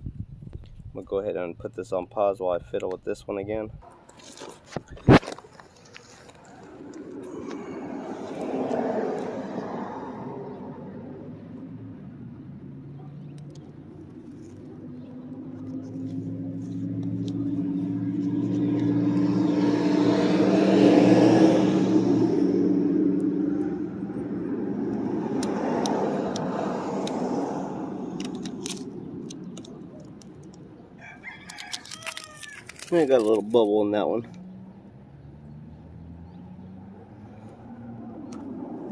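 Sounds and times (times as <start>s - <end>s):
vehicles passing by: 0.9s - 38.9s
low engine hum: 5.3s - 31.0s, 33.9s - 38.9s
handling clicks: 28.2s - 30.6s.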